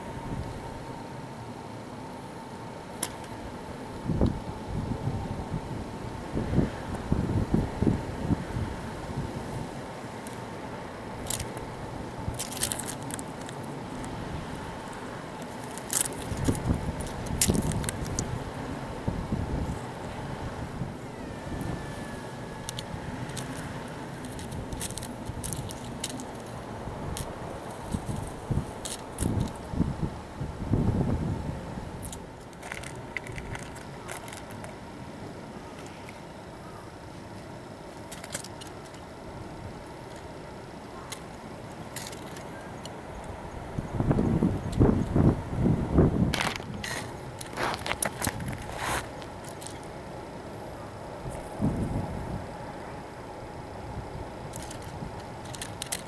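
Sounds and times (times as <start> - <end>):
wind buffeting microphone: 4.0 - 9.8, 16.1 - 26.0, 26.6 - 32.1, 43.2 - 48.8, 51.2 - 52.6
sharp crackles and clicks: 11.2 - 18.4, 22.5 - 29.7, 32.0 - 34.8, 46.3 - 49.9, 54.5 - 56.0.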